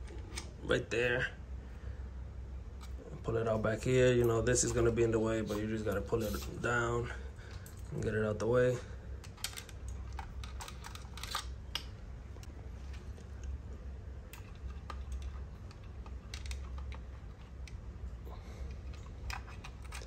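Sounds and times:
low steady hum: 0.0s - 20.0s
plastic clicks and rattles: 9.2s - 11.9s, 14.3s - 17.8s.

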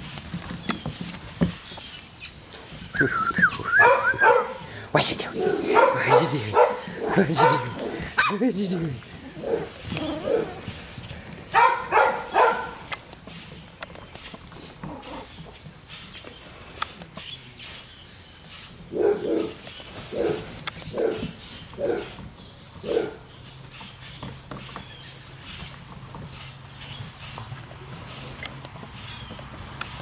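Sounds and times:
puppies barking: 3.0s - 13.0s, 18.9s - 23.3s.

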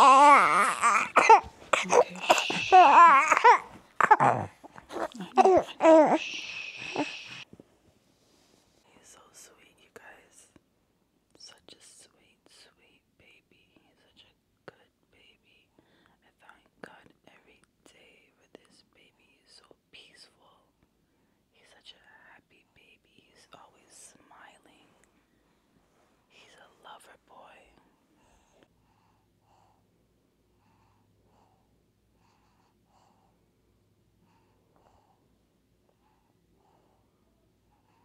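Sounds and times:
soft hissing: 1.3s - 3.8s, 4.7s - 9.4s
person whispering: 1.7s - 3.6s, 4.2s - 7.4s, 8.9s - 10.6s, 11.4s - 20.6s, 21.6s - 25.0s, 26.3s - 28.6s.

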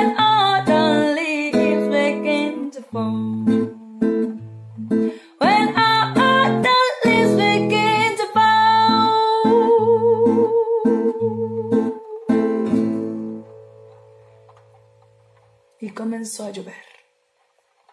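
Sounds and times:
woman singing: 0.0s - 4.4s, 5.4s - 12.5s
guitar strumming chords: 0.0s - 15.7s.

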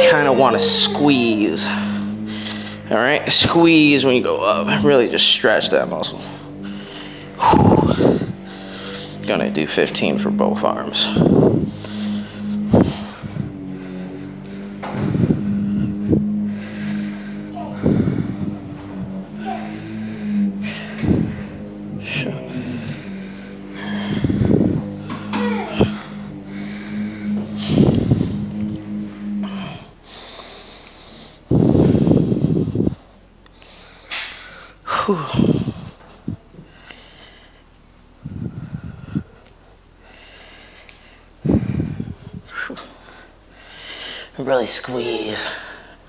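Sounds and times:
man breathing forcefully: 0.0s - 3.0s, 6.3s - 9.2s, 11.2s - 44.4s
steady low hum: 0.0s - 46.0s.

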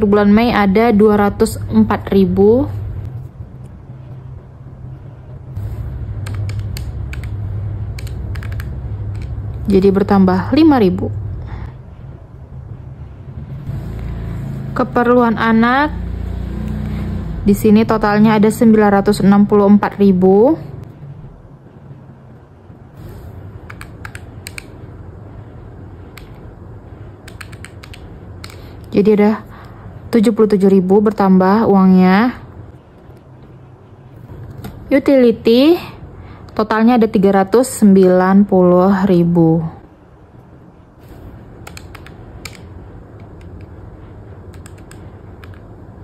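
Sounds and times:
steady low hum: 0.0s - 46.0s
calculator keys clicking: 6.2s - 9.4s, 27.2s - 28.6s, 41.6s - 43.7s, 44.5s - 45.7s.

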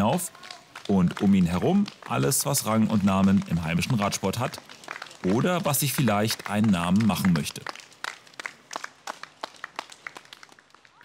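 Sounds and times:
spectators clapping: 0.0s - 11.0s.

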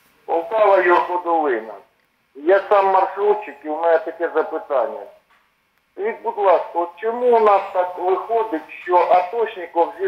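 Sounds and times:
person speaking over telephone: 0.3s - 5.2s, 6.0s - 10.0s.

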